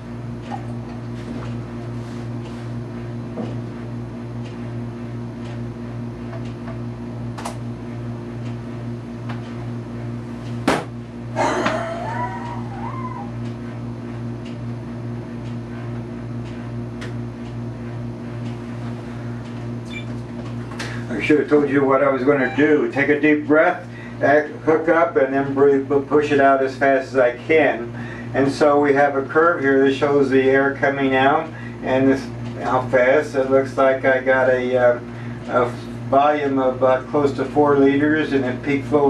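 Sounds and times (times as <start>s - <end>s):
steady low hum: 0.0s - 39.0s
wavering whine: 22.0s - 23.5s.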